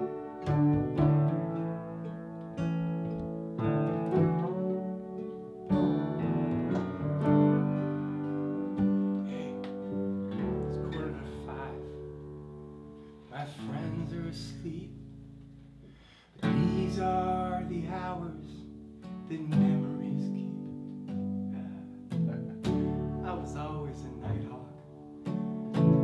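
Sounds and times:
acoustic guitar: 0.0 - 26.0
piano chords: 0.0 - 26.0
upright bass: 0.0 - 26.0.

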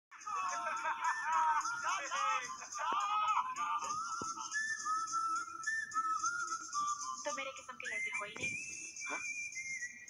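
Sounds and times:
whistled melody: 0.1 - 10.0.

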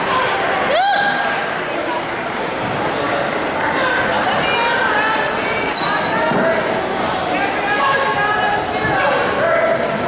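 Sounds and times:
crowd talking in a gymnasium: 0.0 - 10.0.

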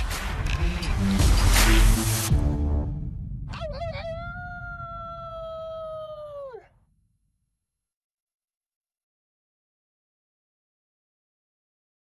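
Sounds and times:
low rumble: 0.0 - 5.9
wolf howling: 3.6 - 6.6.

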